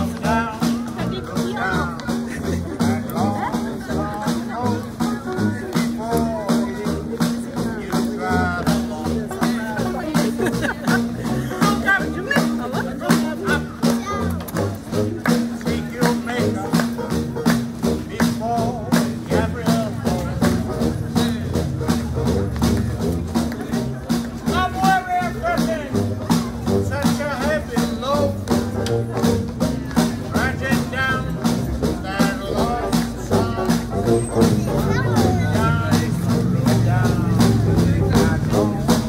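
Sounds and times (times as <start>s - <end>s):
drum beat: 0.0s - 39.0s.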